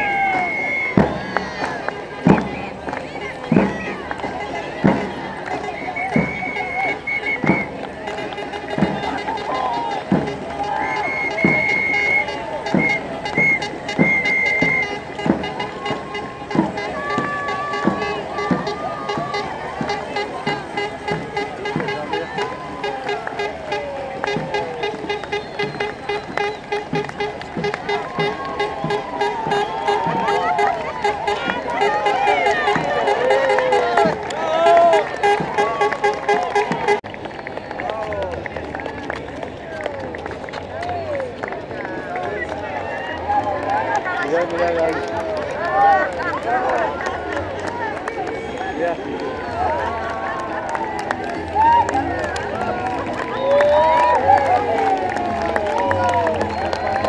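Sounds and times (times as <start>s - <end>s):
crowd voices: 0.0s - 57.0s
steady drum beat: 3.5s - 37.0s
wavering melody: 8.2s - 37.0s.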